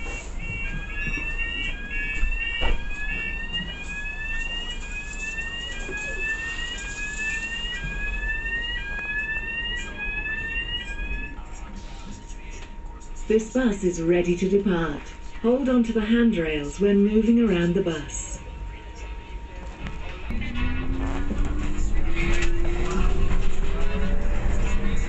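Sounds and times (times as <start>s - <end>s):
electronic two-tone warning alarm: 0.0s - 12.1s, 13.2s - 25.0s.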